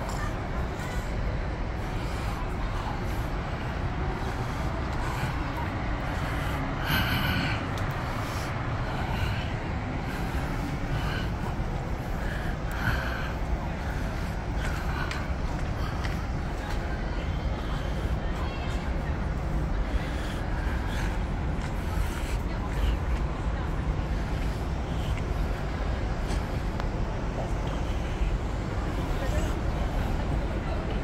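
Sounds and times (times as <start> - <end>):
distant voices: 0.0 - 31.0
low urban rumble: 0.0 - 31.0.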